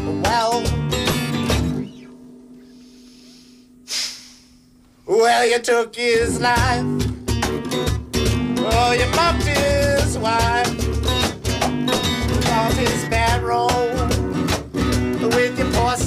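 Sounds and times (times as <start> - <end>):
person singing: 0.0 - 0.8, 5.1 - 6.9, 8.6 - 10.8, 12.3 - 14.2, 15.2 - 16.0
strummed guitar: 0.0 - 3.4, 5.2 - 16.0.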